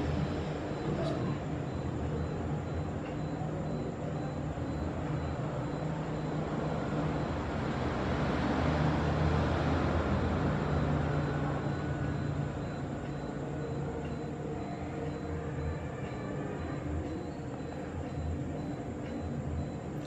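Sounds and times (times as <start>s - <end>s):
passing traffic rumble: 0.0s - 20.0s.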